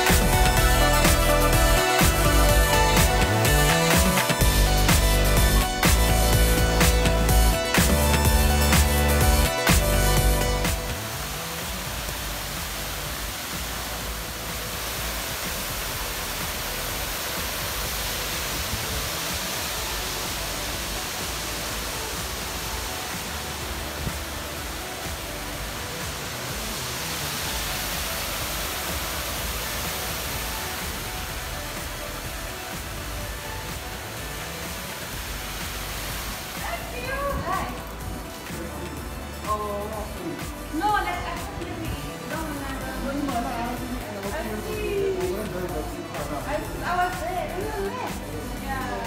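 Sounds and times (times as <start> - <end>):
background music: 0.0 - 49.0
stream running over rocks: 0.0 - 49.0.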